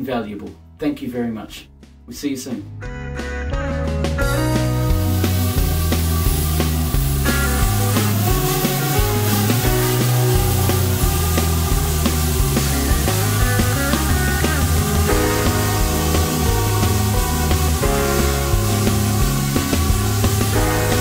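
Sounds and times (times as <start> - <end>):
background music with steady beat: 0.0 - 21.0.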